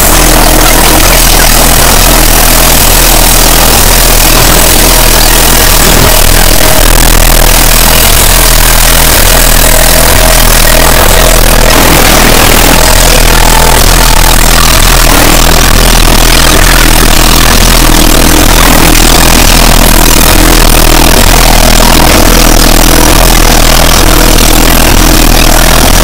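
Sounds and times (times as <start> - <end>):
harsh distorted noise: 0.0 - 26.0
steady low hum: 0.0 - 26.0.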